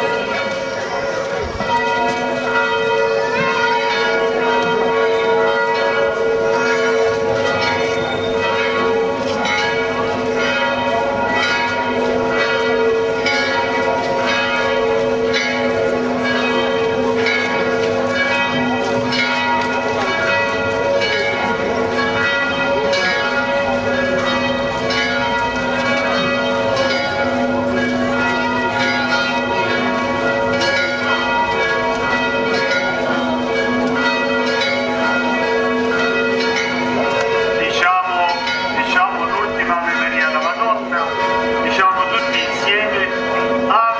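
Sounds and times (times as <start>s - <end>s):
church bells ringing: 0.0s - 43.9s.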